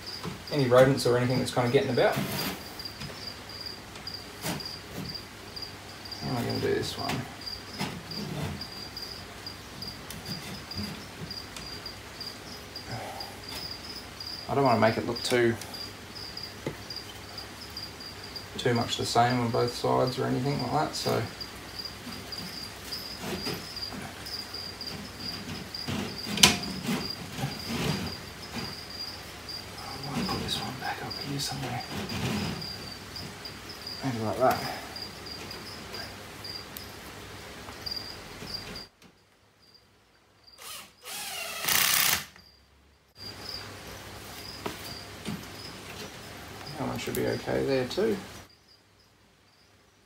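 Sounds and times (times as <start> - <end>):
rustling: 0.0 - 5.3, 19.0 - 38.9
cricket chirping: 0.0 - 50.0.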